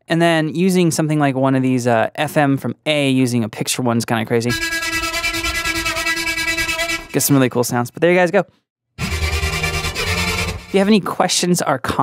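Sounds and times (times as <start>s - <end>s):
sustained fluttering synthesizer note: 4.5s - 7.2s, 9.0s - 10.8s.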